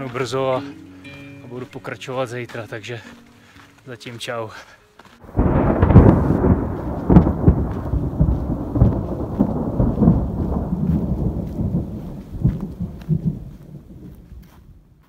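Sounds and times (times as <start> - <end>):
rolling thunder: 5.3 - 14.9.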